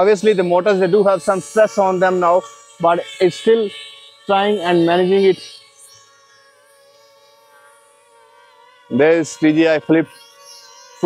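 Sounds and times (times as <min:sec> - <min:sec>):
drone propellers buzzing: 0:00.0 - 0:11.0.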